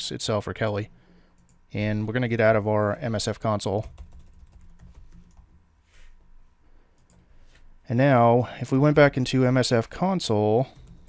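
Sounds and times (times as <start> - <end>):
computer keyboard typing: 3.8 - 5.5, 10.7 - 11.0.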